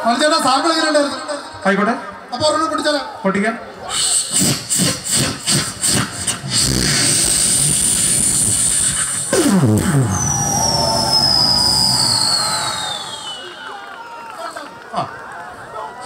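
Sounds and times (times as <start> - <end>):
people imitating an engine vocally: 4.3 - 12.0
long falling whistle: 8.9 - 13.8.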